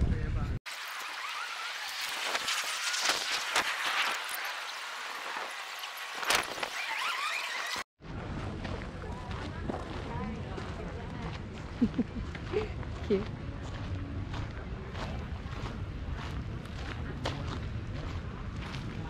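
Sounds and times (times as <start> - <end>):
high chirps and squeals: 0.7 - 7.9
steady low rumble: 8.0 - 19.0.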